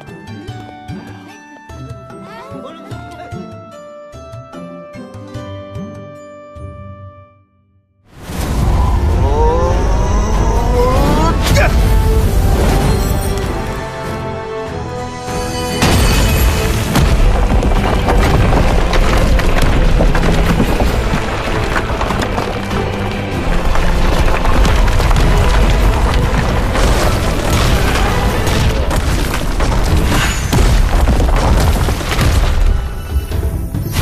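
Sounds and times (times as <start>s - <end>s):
dramatic soundtrack music: 8.1s - 34.0s
deep rock rumble: 8.2s - 12.5s, 16.4s - 33.3s.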